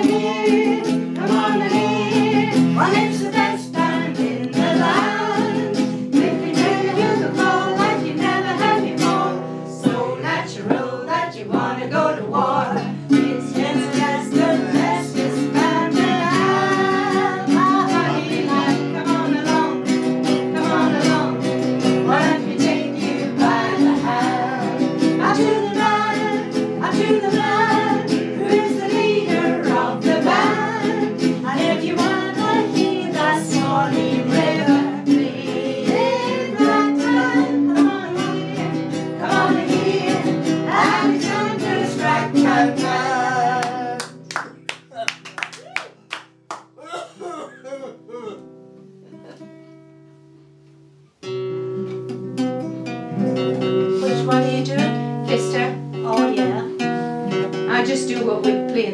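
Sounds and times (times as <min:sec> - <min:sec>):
people singing together: 0:00.0 - 0:44.2
guitar: 0:00.0 - 0:58.9.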